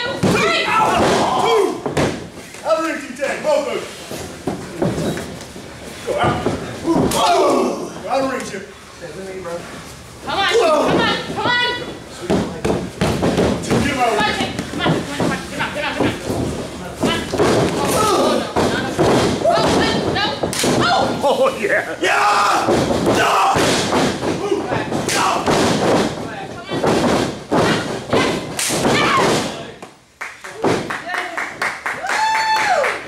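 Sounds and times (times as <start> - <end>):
bodies hitting wrestling mat: 0.0 - 2.6, 4.0 - 7.9, 10.3 - 21.4, 22.2 - 29.8, 30.6 - 31.1
voices: 6.0 - 29.9.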